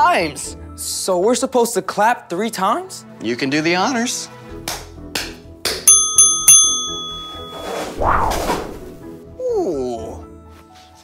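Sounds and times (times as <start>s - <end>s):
bright bell chimes: 5.9s - 8.0s
whoosh: 7.7s - 9.0s.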